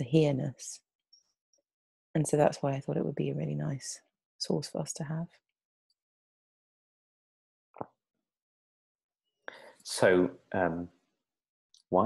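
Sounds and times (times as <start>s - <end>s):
man breathing in: 9.5s - 9.8s
man speaking: 9.9s - 10.9s.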